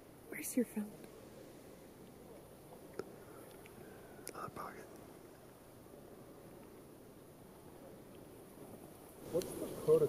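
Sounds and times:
faint background hiss: 0:00.0 - 0:10.0
person whispering: 0:04.3 - 0:04.9.

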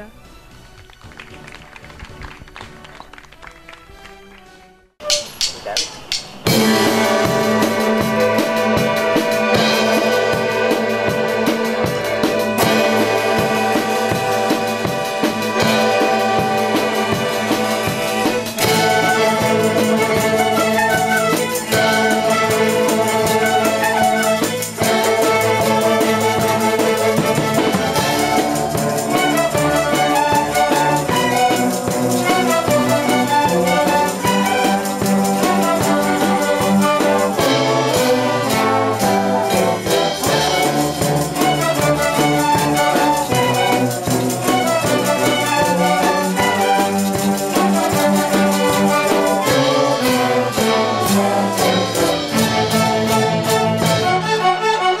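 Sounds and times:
orchestra with strings flutes and drums: 0:00.0 - 0:55.0.

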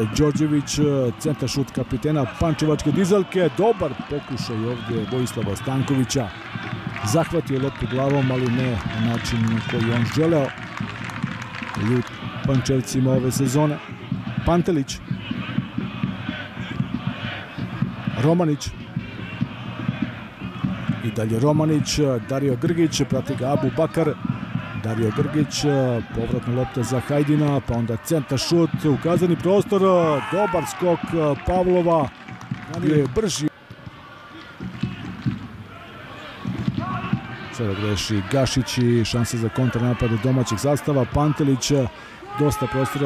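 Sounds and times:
stadium crowd hubbub: 0:00.0 - 0:43.0.

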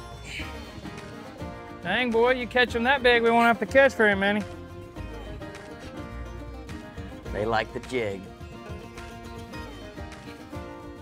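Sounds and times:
country music with plucked strings: 0:00.0 - 0:11.0.

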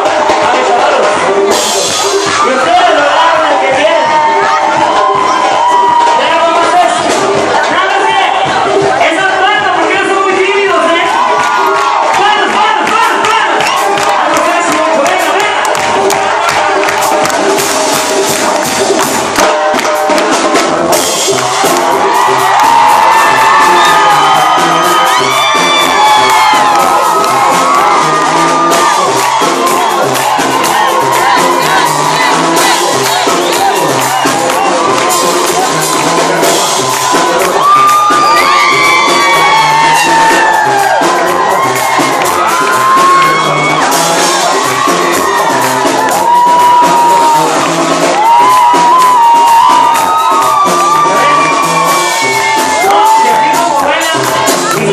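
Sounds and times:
crowd cheering and whooping: 0:00.0 - 0:54.9
drums keeping a steady beat: 0:00.0 - 0:54.9
tuba bass line: 0:15.2 - 0:49.0, 0:49.8 - 0:54.9.

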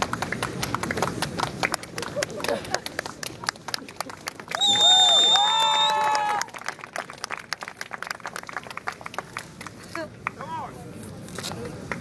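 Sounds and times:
audience clapping: 0:00.0 - 0:10.6.

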